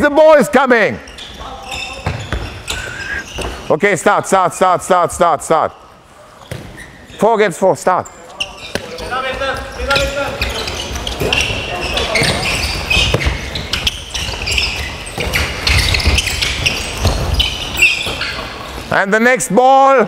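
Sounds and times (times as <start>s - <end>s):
shoe squeaks on floor: 1.0s - 3.8s, 6.3s - 7.2s, 8.0s - 19.0s
ball bouncing: 2.0s - 2.7s, 12.1s - 18.5s.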